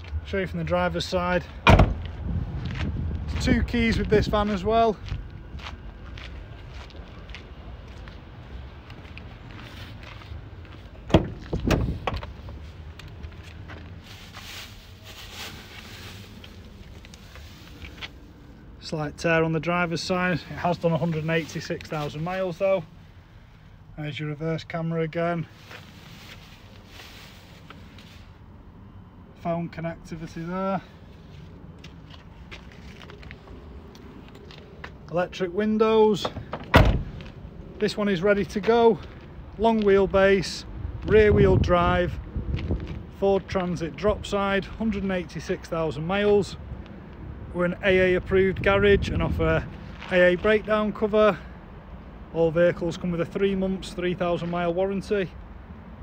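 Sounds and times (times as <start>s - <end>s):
low steady rumble: 0.0s - 54.1s
faint footsteps: 1.4s - 18.6s, 25.5s - 28.4s, 30.9s - 35.2s, 36.2s - 37.8s, 38.4s - 40.0s, 42.4s - 43.6s
door latch clunk: 1.7s - 2.0s.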